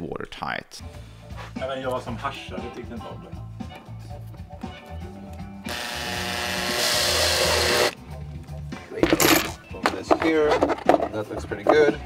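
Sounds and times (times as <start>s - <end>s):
background music: 0.0s - 12.0s
cordless drill whining: 5.7s - 8.0s.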